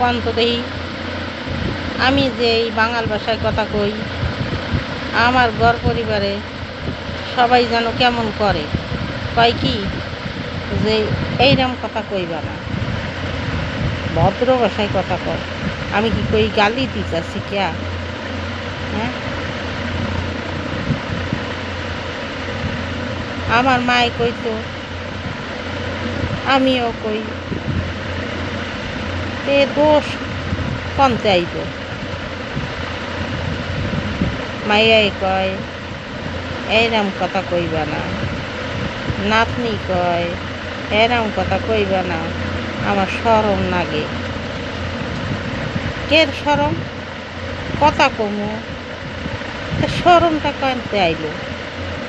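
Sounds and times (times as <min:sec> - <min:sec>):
low mechanical hum: 0:00.0 - 0:52.0.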